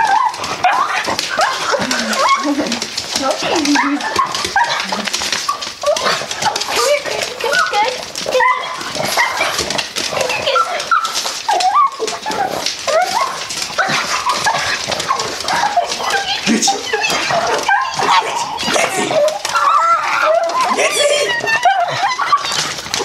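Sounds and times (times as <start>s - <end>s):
dogs squealing and whining: 0.0s - 23.0s.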